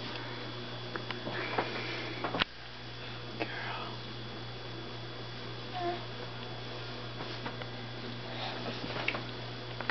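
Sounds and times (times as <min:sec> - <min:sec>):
steady low hum: 0:00.0 - 0:09.9.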